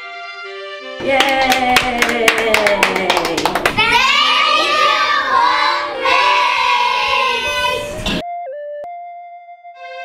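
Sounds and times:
children singing together: 0:03.9 - 0:08.2.

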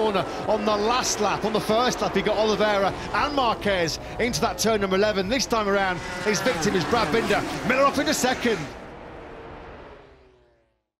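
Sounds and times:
race bikes high-revving engines: 0:00.0 - 0:10.7.

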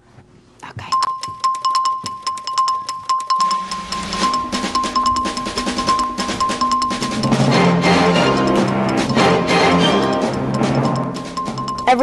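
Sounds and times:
repeated high beep: 0:00.9 - 0:12.0
ticking percussion: 0:00.9 - 0:12.0.

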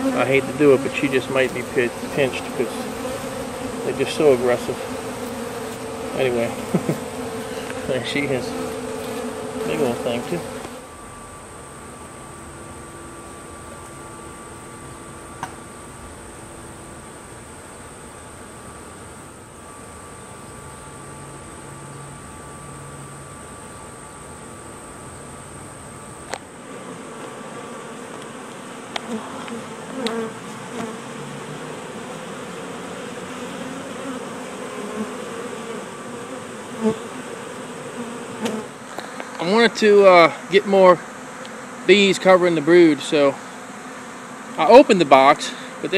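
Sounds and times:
bees buzzing: 0:00.0 - 0:45.9.

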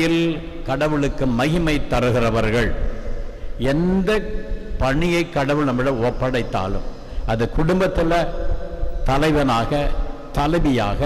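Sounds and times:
man preaching into a microphone: 0:00.0 - 0:11.0.

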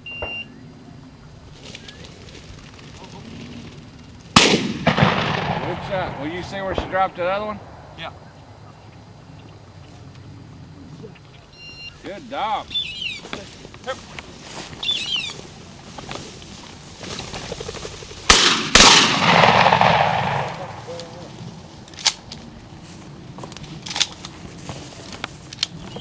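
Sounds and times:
rolling echo: 0:03.0 - 0:10.4, 0:17.5 - 0:24.5
shotgun shots: 0:04.3 - 0:08.2, 0:18.3 - 0:21.3.

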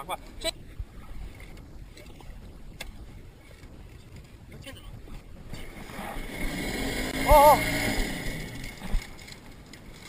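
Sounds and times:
water moving around boat: 0:00.0 - 0:10.0
wind rumbling on microphone: 0:00.0 - 0:10.0.

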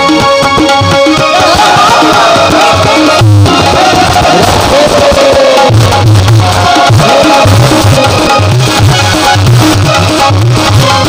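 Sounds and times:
gliding melody over keyboard: 0:00.0 - 0:09.2
deep tabla strokes: 0:01.3 - 0:11.0.

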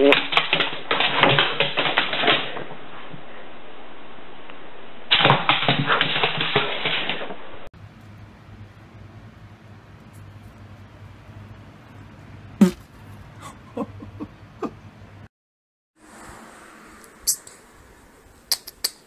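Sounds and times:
steady low hum: 0:07.8 - 0:15.3
sharp knock: 0:12.6 - 0:12.9.

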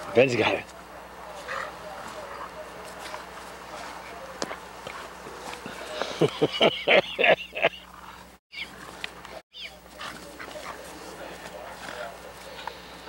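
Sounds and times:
dogs barking and yipping: 0:00.0 - 0:13.0.

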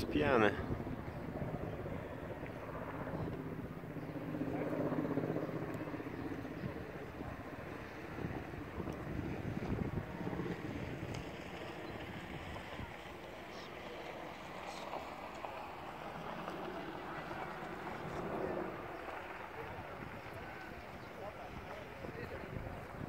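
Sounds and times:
faint voices: 0:00.0 - 0:23.0
wind noise on microphone: 0:06.6 - 0:13.3, 0:19.7 - 0:23.0.

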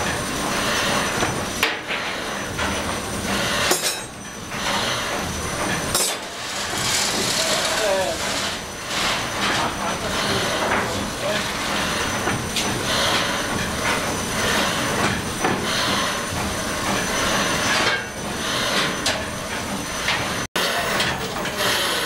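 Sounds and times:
steam engine clatter and hiss: 0:00.0 - 0:22.0.

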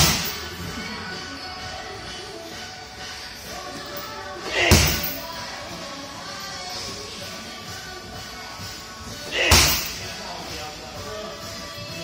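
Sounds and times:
kick hitting heavy punching bag: 0:00.0 - 0:00.4, 0:04.6 - 0:05.2, 0:09.4 - 0:10.0.

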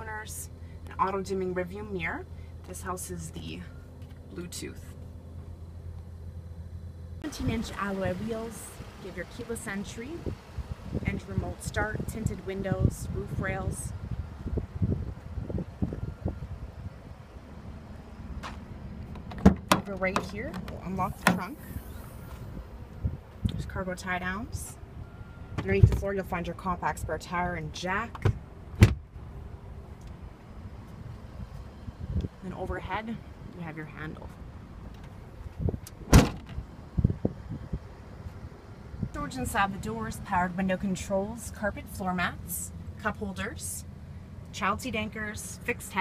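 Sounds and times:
wind buffeting microphone: 0:10.1 - 0:23.8, 0:31.0 - 0:32.7, 0:35.3 - 0:39.4
car liftgate slamming: 0:36.1 - 0:36.6.

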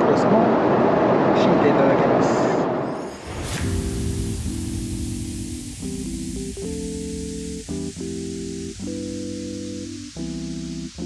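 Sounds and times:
background music with held chords: 0:03.3 - 0:11.0.

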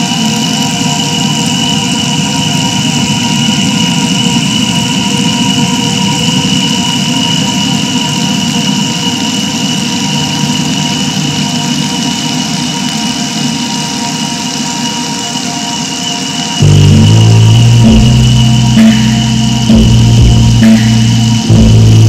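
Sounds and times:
loud engine-like drone: 0:00.0 - 0:12.8, 0:15.3 - 0:22.0
sustained high tones: 0:16.6 - 0:22.0.

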